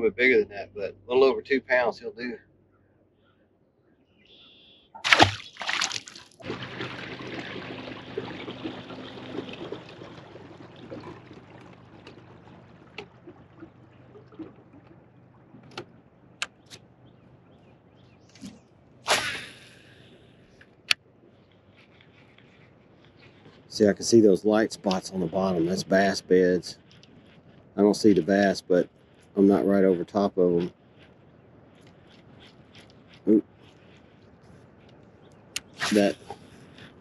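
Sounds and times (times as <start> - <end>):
faint low hum: 0.0 - 37.0
water splashing: 5.0 - 17.0, 18.3 - 20.1, 21.8 - 30.7, 35.6 - 37.0
water sloshing and trickling: 5.0 - 19.2
short rush of noise: 19.1 - 20.1, 35.6 - 36.4.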